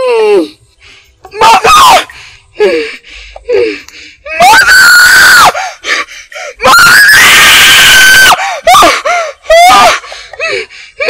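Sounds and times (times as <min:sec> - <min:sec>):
woman screaming: 0:01.4 - 0:02.1, 0:04.3 - 0:05.6, 0:06.6 - 0:10.0
woman crying and gasping: 0:08.2 - 0:11.0.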